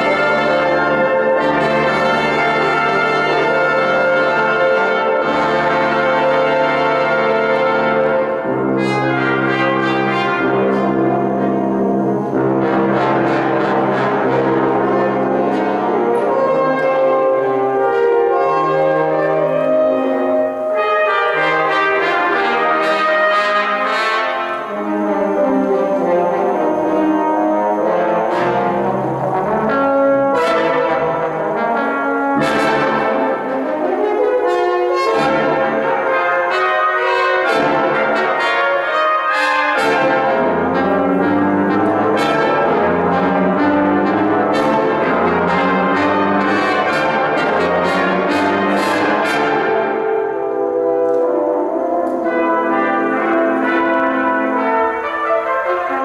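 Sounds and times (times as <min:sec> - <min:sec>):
brass choir playing chords: 0:00.0 - 0:56.0.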